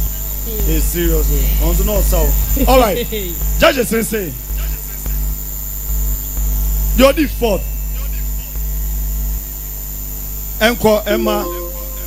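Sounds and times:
electrical mains hum: 0.0s - 12.0s
thin high whine: 10.6s - 12.0s.

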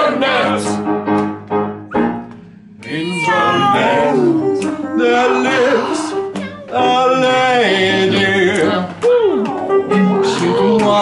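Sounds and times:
upright piano: 0.0s - 11.0s
voices singing long held notes: 2.8s - 6.2s, 6.8s - 11.0s.

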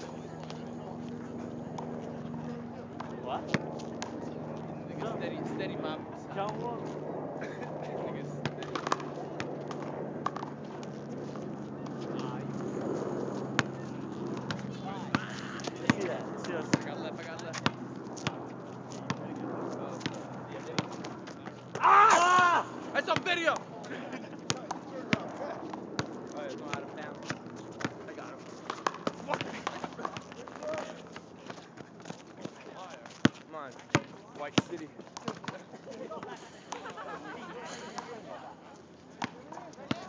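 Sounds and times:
steady low hum: 0.0s - 21.4s
distant voices: 0.0s - 40.0s
players' footsteps: 8.4s - 40.0s
basketball bouncing on asphalt: 17.5s - 18.4s, 26.0s - 28.0s, 33.2s - 35.6s, 39.2s - 40.0s.

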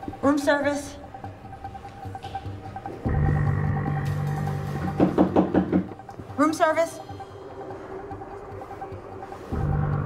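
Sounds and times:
knocks on door: 4.8s - 6.0s
low film score drone: 7.0s - 10.0s.

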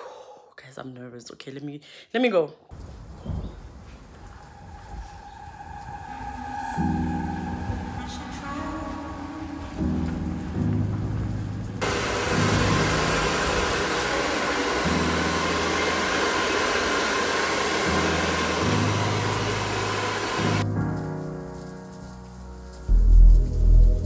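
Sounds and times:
hair dryer blowing: 11.8s - 20.6s
background music with bass line: 22.5s - 24.0s.

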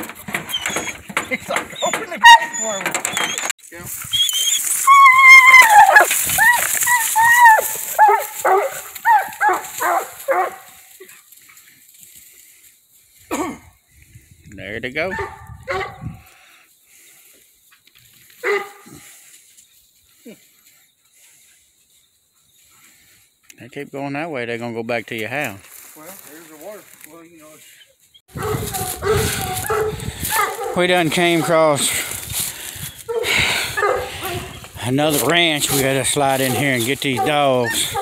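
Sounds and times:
dog yelping and whining: 0.0s - 10.5s, 33.8s - 34.6s.

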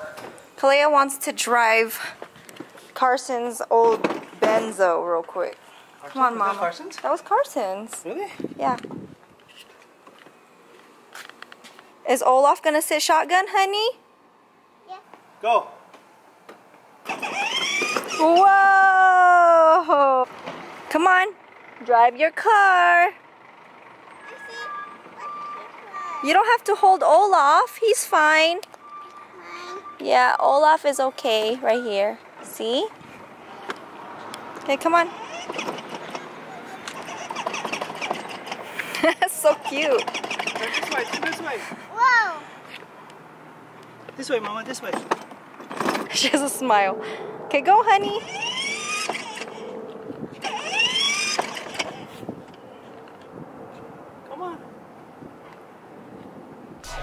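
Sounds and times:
toy car electric motor whining: 17.1s - 18.4s, 35.1s - 38.9s, 39.7s - 41.4s, 48.1s - 52.2s
electronic toy beeps: 24.2s - 25.7s, 28.8s - 30.1s.

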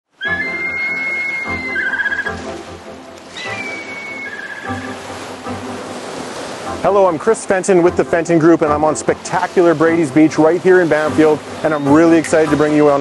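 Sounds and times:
whistled eagle call: 0.1s - 2.5s, 3.3s - 5.1s, 11.6s - 12.3s
background music: 0.1s - 13.0s.

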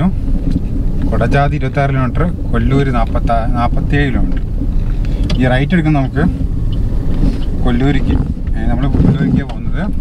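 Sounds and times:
car driving rumble: 0.0s - 10.0s.

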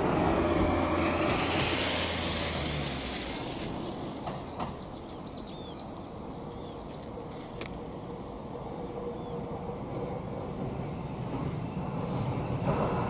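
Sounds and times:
vehicle rumbling: 0.0s - 13.0s
small birds chirping: 4.5s - 7.7s.

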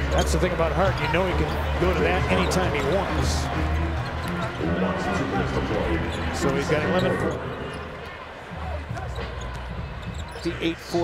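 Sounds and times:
crowd rumble: 0.0s - 11.0s.

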